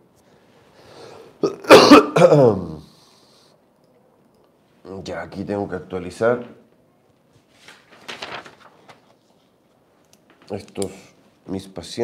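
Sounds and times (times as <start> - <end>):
man coughing: 1.4 - 2.8.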